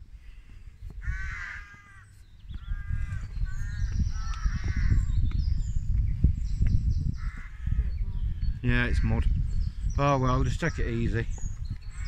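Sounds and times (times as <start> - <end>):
crow cawing: 1.0 - 5.1, 7.2 - 7.9.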